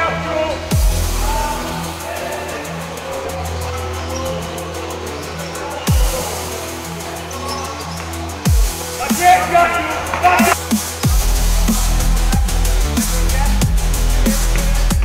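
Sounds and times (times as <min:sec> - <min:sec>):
dubstep electronic dance music: 0:00.0 - 0:15.0
deep bass drop: 0:00.7 - 0:01.8, 0:10.6 - 0:15.0.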